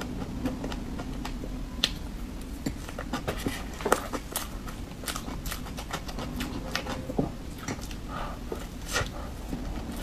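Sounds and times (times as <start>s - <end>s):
wet chewing: 0.0s - 10.0s.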